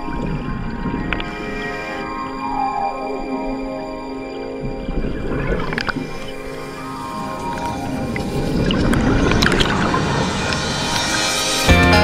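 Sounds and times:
bubbles rushing and gurgling: 0:04.6 - 0:11.6
background music: 0:09.5 - 0:12.0.

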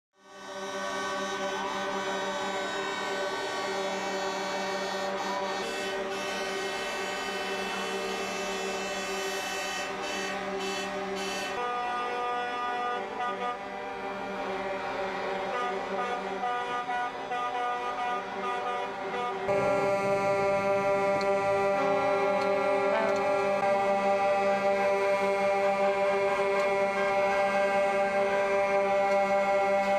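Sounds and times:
truck air horns blaring: 0:00.2 - 0:29.9.

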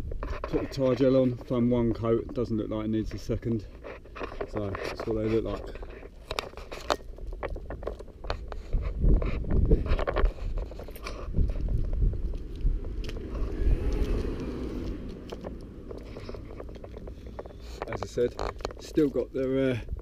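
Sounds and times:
wind rumble on microphone: 0:00.0 - 0:20.0
camera handling clicks and scrapes: 0:03.7 - 0:12.0.

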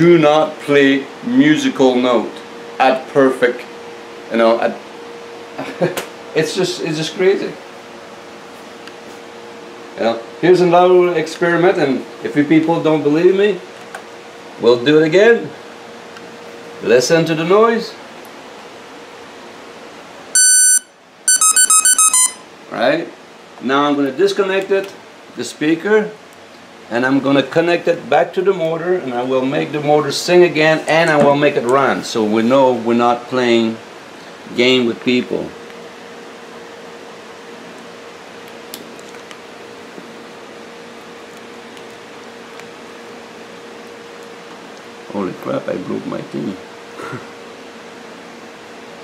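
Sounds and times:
electrical hum: 0:00.0 - 0:49.0
high-pitched electronic beep: 0:20.4 - 0:22.4.

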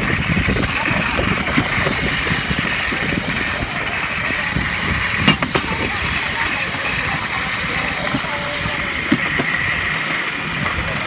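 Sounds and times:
rail trolley rolling on tracks: 0:00.0 - 0:11.0
wind rumble on microphone: 0:00.0 - 0:11.0.

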